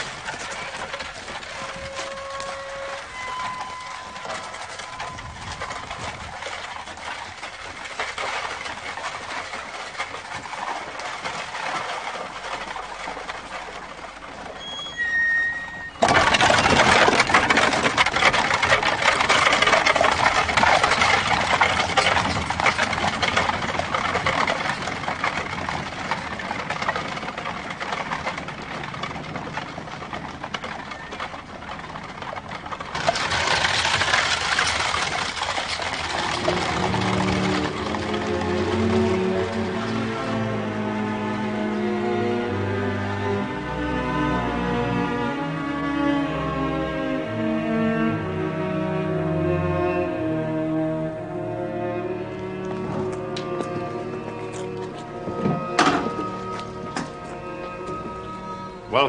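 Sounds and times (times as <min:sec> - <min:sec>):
horse hooves and carriage wheels: 0:00.0 - 0:59.0.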